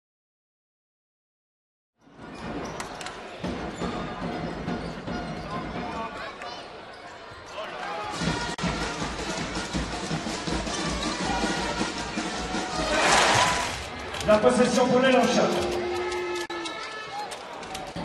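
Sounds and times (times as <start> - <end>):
music: 2.0 - 6.1, 8.0 - 18.0
arena crowd noise: 2.1 - 18.0.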